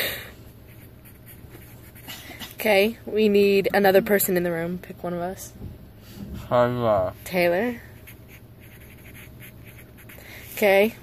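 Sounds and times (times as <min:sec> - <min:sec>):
pen scratching on paper: 0:00.7 - 0:02.8, 0:07.4 - 0:11.0.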